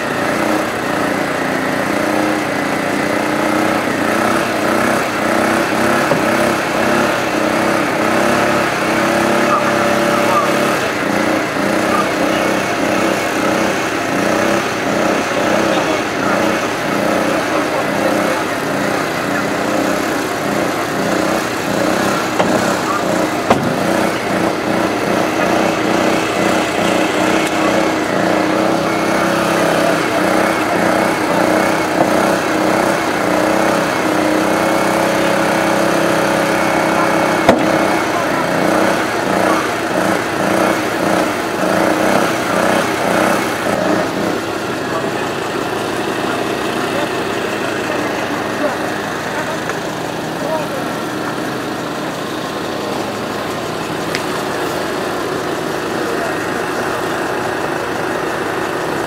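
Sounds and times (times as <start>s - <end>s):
hydraulic tools working on car: 0.0s - 59.0s
small petrol engine running: 0.0s - 59.0s
sharp knocks: 22.0s - 24.2s, 37.4s - 37.9s.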